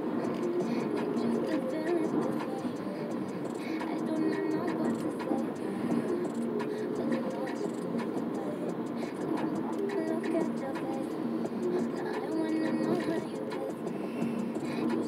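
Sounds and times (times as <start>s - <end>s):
car road and engine noise: 0.0s - 15.0s
faint car radio: 0.0s - 15.0s.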